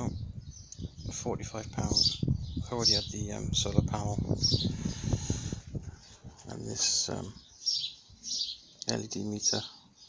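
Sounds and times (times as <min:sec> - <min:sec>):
man talking: 0:01.0 - 0:04.4, 0:06.4 - 0:07.4, 0:08.8 - 0:09.8
faint bird chirps: 0:05.9 - 0:10.0.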